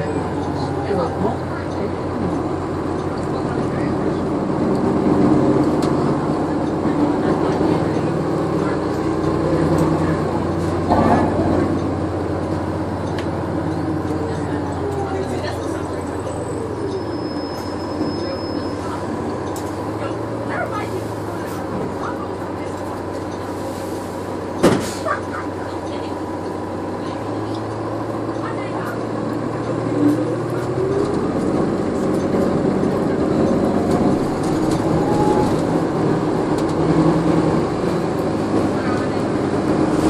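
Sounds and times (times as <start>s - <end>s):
bus engine hum: 0.0s - 40.0s
bus whine pulling away: 0.0s - 40.0s
passenger voices murmuring: 0.0s - 40.0s.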